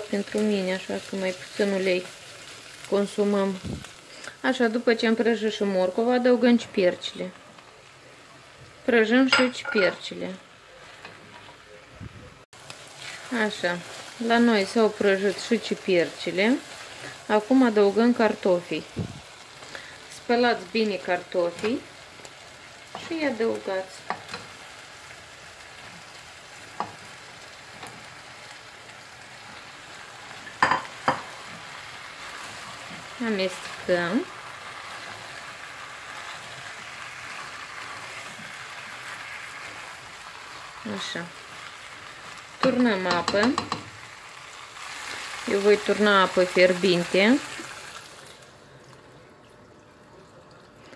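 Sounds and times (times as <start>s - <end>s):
vegetables sizzling in oil: 0.0s - 49.4s.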